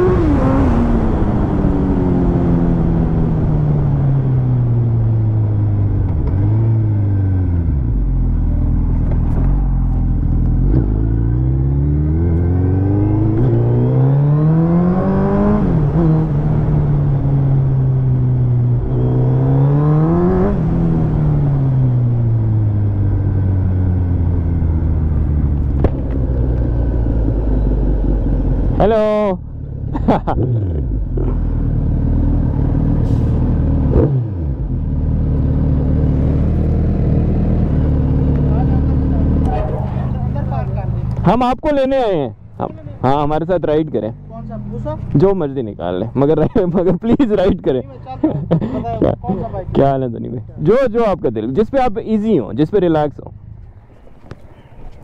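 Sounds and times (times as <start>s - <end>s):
motorcycle engine revving: 0.0s - 41.3s.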